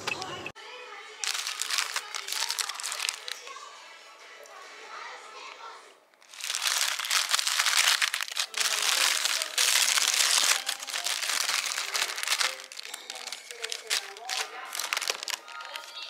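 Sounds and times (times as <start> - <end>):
faint voices: 0.0 - 16.0
paper wrapper crinkling: 1.2 - 3.5, 6.2 - 16.0.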